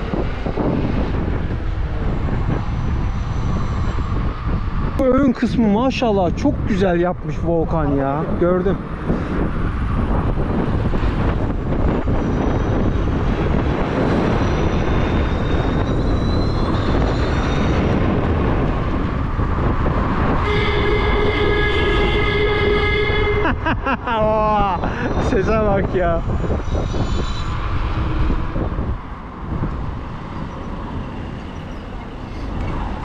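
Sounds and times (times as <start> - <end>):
tyre and road noise: 0.0 - 33.0
wind rushing over microphone: 0.0 - 33.0
horn sounding: 20.4 - 23.8.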